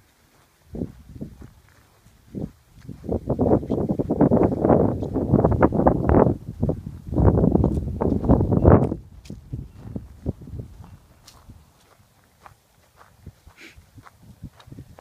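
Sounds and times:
footsteps through grass: 0.0 - 15.0.

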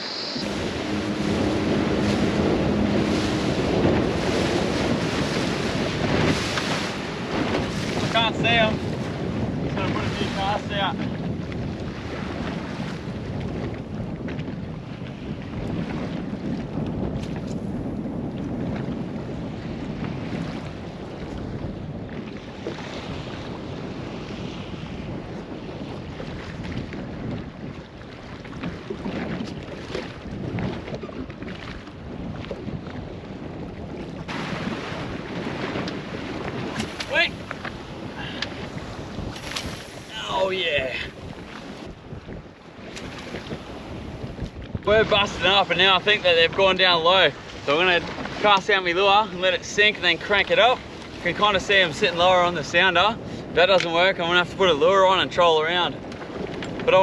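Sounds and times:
water rushing around boat: 0.0 - 57.0
wind buffeting microphone: 0.0 - 57.0.

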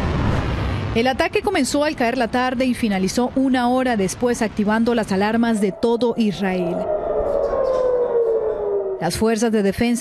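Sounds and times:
air raid siren wailing: 5.2 - 10.0.

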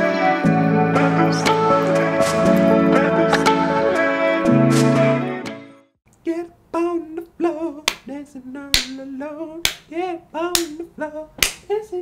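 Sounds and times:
person singing bouncy melody: 0.0 - 12.0
sharp finger snaps: 8.8 - 9.0, 9.6 - 9.9, 10.6 - 10.8, 11.4 - 11.7.

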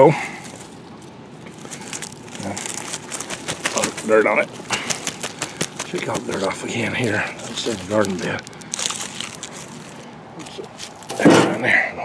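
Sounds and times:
dry stalks and fabric crackling: 0.0 - 11.3.

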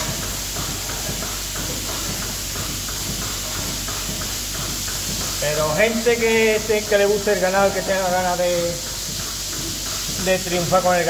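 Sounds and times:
milking machine hissing and humming: 0.0 - 11.0.

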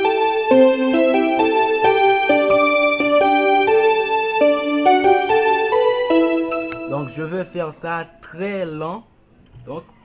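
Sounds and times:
keyboard playing chords: 0.0 - 7.9.

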